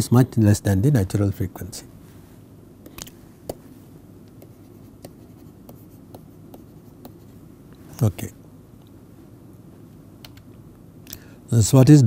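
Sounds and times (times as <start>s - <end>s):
steady low hum: 0.0s - 12.0s
stylus tapping on tablet screen: 2.8s - 3.7s, 4.3s - 7.2s.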